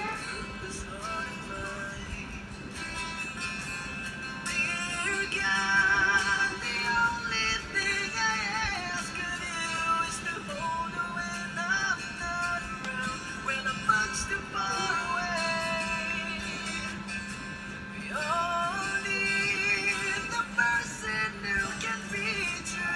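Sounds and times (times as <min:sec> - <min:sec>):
man singing: 0:00.0 - 0:02.9, 0:04.4 - 0:17.0, 0:18.0 - 0:22.9
acoustic guitar: 0:00.0 - 0:22.9.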